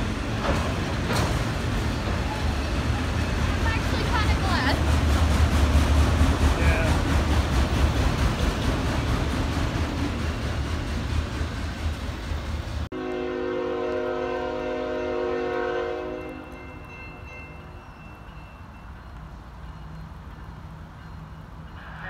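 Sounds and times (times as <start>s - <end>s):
train wheels rumbling on rail: 0.0s - 22.0s
locomotive horn: 12.9s - 16.6s.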